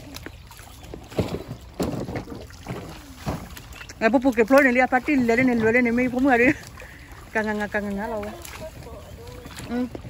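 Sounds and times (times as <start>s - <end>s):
feet splashing through creek: 0.0s - 10.0s
wind on microphone: 4.9s - 10.0s.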